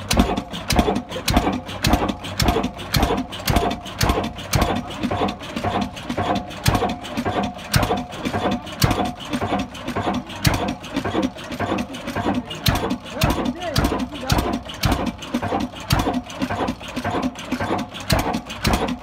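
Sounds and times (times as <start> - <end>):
stationary diesel engine knocking: 0.0 - 19.0.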